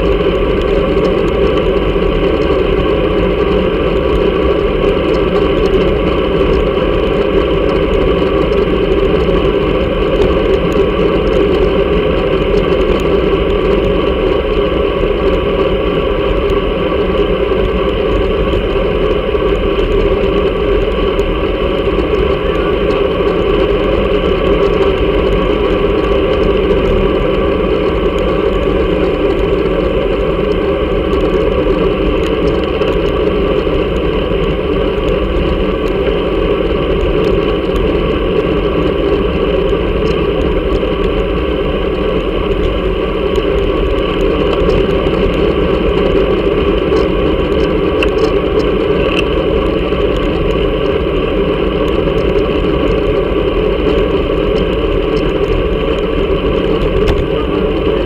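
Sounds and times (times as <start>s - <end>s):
road vibration rumble: 0.0s - 58.0s.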